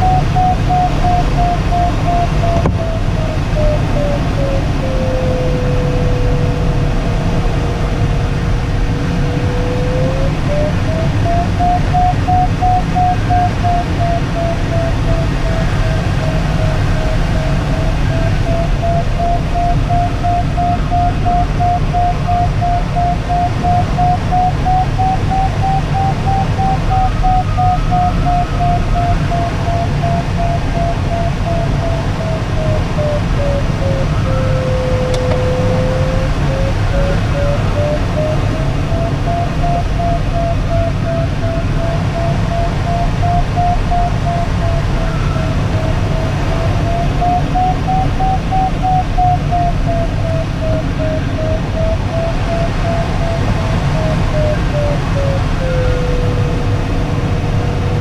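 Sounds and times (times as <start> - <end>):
variometer beeping: 0.0 - 6.0, 9.0 - 16.4, 17.0 - 55.0
steady low variometer tone: 0.0 - 58.0.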